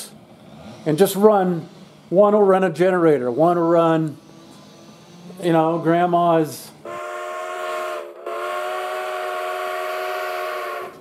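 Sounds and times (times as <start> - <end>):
chime steam whistle blowing: 6.8 - 11.0.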